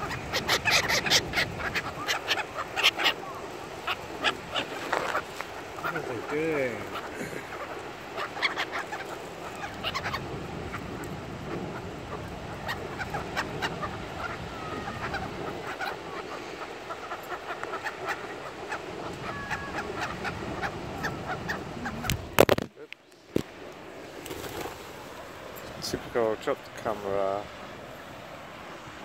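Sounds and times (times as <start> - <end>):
higher pigeon calls: 0.0 - 22.5
pigeons murmuring calls: 0.0 - 22.6
pecking and scuffling on gravel: 4.6 - 5.6.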